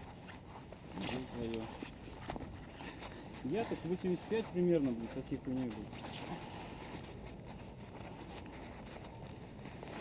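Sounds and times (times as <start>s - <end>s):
clothing rustling scrape: 0.0s - 10.0s.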